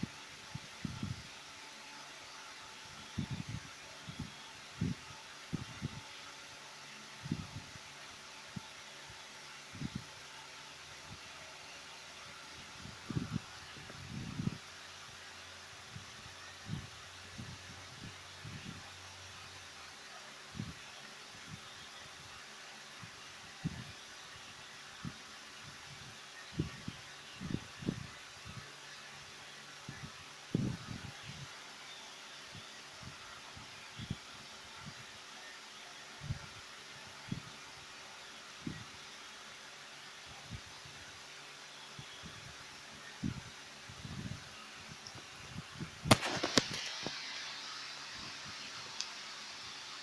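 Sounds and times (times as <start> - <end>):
ceiling fan hiss: 0.0 - 50.0.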